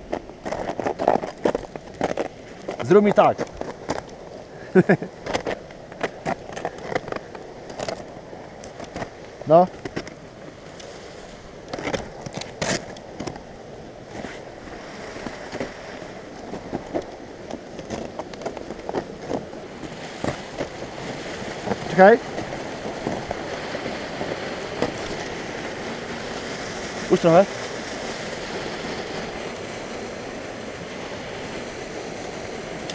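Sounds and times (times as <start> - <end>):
water rushing under ice: 0.0 - 32.9
crampons crunching into ice: 0.1 - 4.1.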